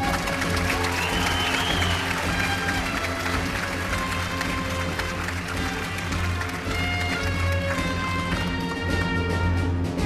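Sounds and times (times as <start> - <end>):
jazz big band playing: 0.0 - 10.0.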